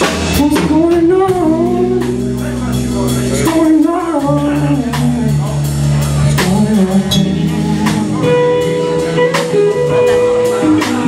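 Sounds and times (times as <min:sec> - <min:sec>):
drum kit hits: 0:00.0 - 0:11.0
electric bass: 0:00.0 - 0:11.0.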